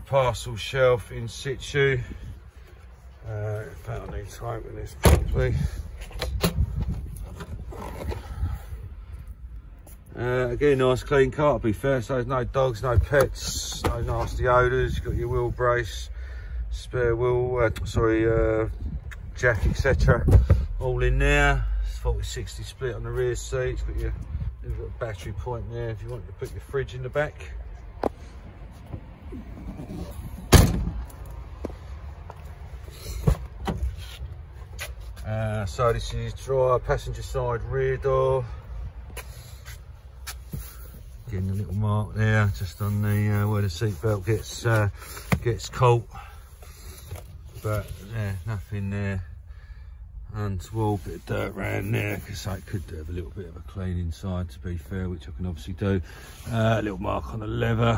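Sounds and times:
car tailgate opening: 5.0 - 5.4, 29.4 - 31.1
microphone handling noise: 5.0 - 8.6, 19.0 - 20.8
wind rumble on microphone: 5.2 - 9.3, 17.7 - 20.8.

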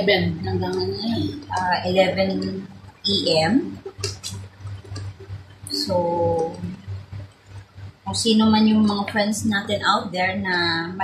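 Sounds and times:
woman speaking: 0.0 - 7.0, 8.1 - 11.0
faint low room hum: 0.0 - 11.0.

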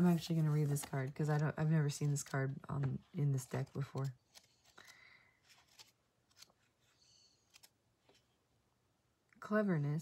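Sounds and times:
pages being leafed through: 0.0 - 8.3.

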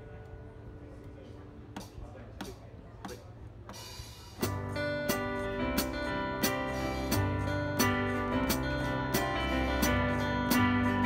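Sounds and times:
drum kit: 1.7 - 11.0
sustained guitar chords: 4.4 - 11.0.

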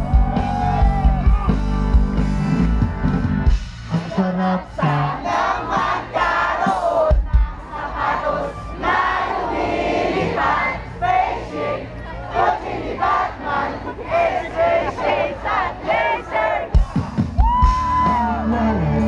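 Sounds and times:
live rock band playing: 0.0 - 6.0, 16.7 - 19.0
crowd singing along and shouting: 0.0 - 19.0
person singing: 18.0 - 19.0.

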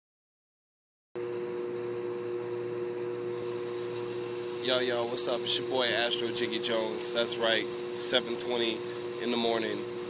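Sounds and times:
steady machine hum: 1.2 - 10.0.

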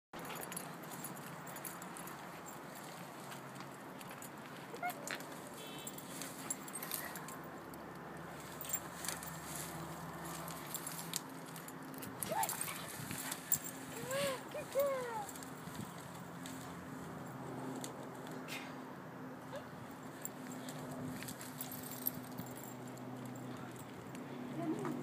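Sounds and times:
rustling of shrub branches: 0.3 - 18.5
light crackles of twigs: 0.6 - 17.1
puppy whining: 4.7 - 5.1.

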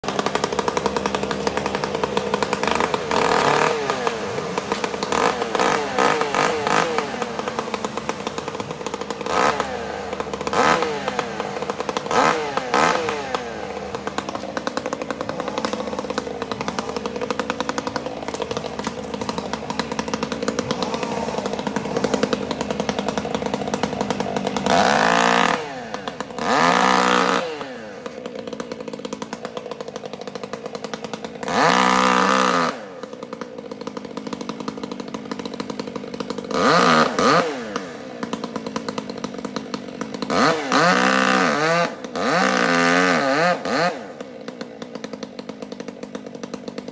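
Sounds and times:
chainsaw revving: 0.0 - 46.9.

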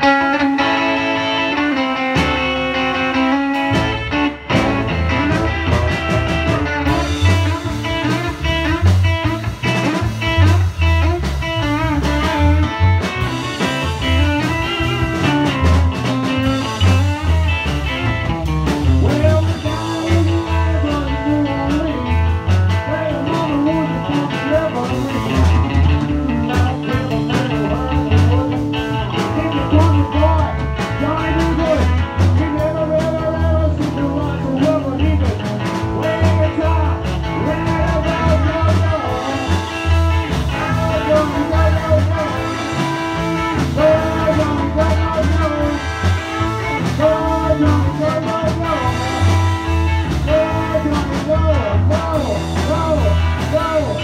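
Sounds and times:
bass guitar: 0.0 - 54.0
drum kit: 0.0 - 54.0
electric guitar: 0.0 - 54.0.

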